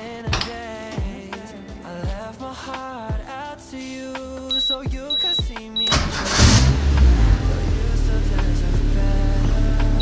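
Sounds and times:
background music: 0.0s - 10.0s
car engine starting and idling: 4.5s - 10.0s.

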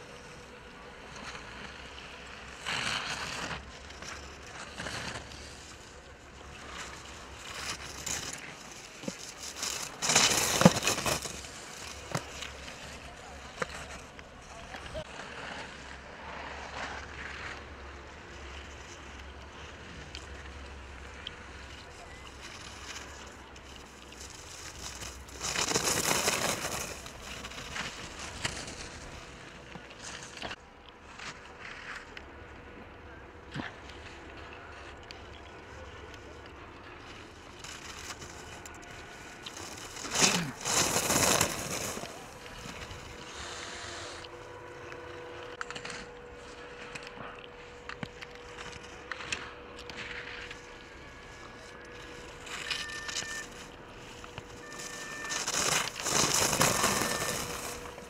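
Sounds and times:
skis scraping on snow: 0.0s - 32.5s, 33.4s - 58.0s.

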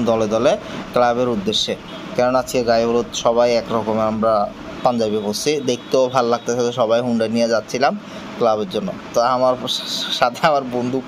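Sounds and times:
faint background noise: 0.0s - 11.0s
man speaking: 0.0s - 11.0s.

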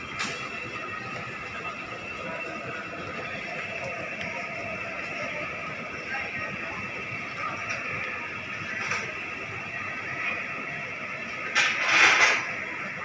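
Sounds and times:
hubbub of shoppers' voices: 0.0s - 13.0s.

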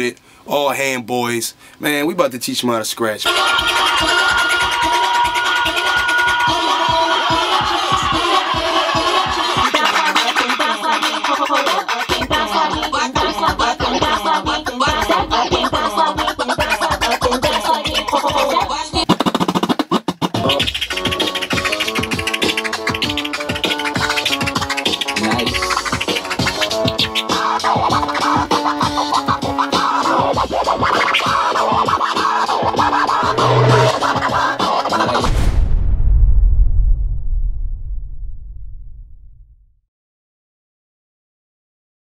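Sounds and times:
vinyl record scratching: 3.2s - 35.3s
music beat: 3.3s - 35.3s.

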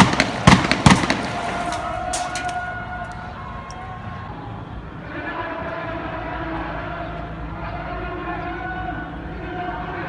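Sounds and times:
distant gunshot reports: 0.0s - 1.9s
loud gunfire bangs: 0.0s - 2.6s
street noise: 0.0s - 10.0s.

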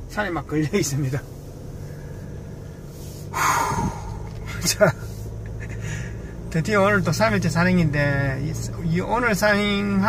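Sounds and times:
car cabin road hum: 0.0s - 10.0s.

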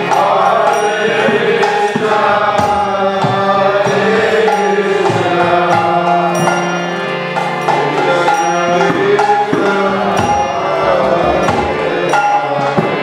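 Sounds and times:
hand drum strikes: 0.0s - 6.8s, 7.4s - 13.0s
harmonium tones: 0.0s - 13.0s
voices chanting: 0.0s - 13.0s.

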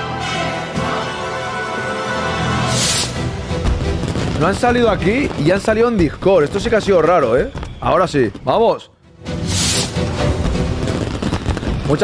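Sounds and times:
music: 0.0s - 7.8s, 9.0s - 12.0s
fireworks crackling and popping: 2.7s - 8.6s, 9.3s - 12.0s.

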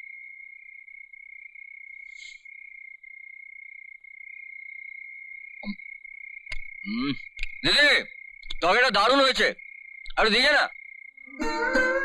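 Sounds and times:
high-pitched insect trill: 0.0s - 12.0s.

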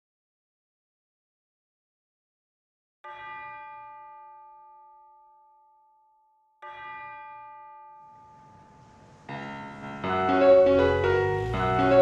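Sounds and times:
bell ringing: 6.6s - 12.0s.

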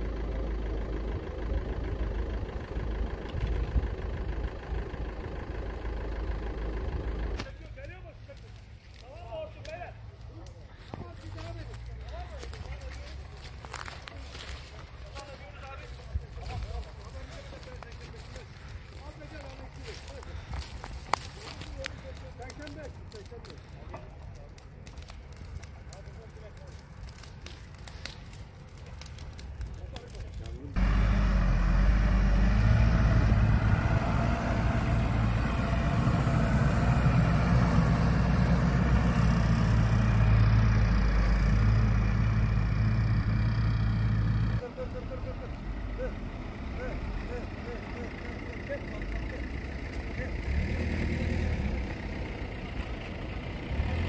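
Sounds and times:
diesel engine running: 0.0s - 54.0s
dry grass crackling as it burns: 0.0s - 54.0s.

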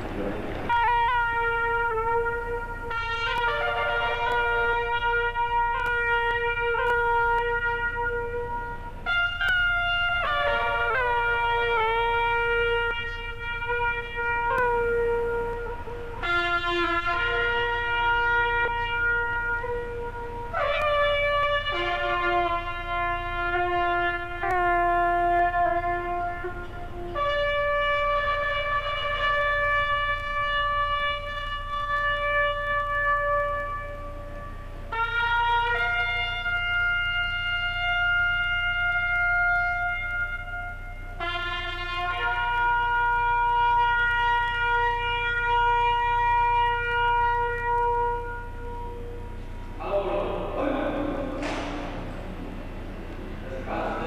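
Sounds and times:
military band playing ceremonial music: 0.0s - 47.4s, 50.4s - 54.0s.

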